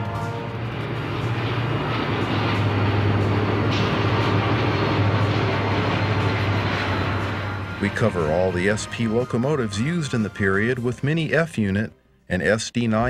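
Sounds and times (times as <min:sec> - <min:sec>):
wheel and rail noise: 0:00.0 - 0:10.8
diesel locomotive engines droning: 0:00.0 - 0:12.3
music: 0:00.0 - 0:13.0.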